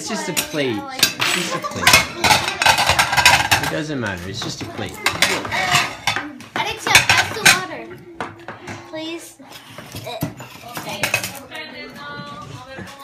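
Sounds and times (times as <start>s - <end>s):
murmuring voices: 0.0s - 13.0s
plates and cutlery clattering: 0.0s - 13.0s.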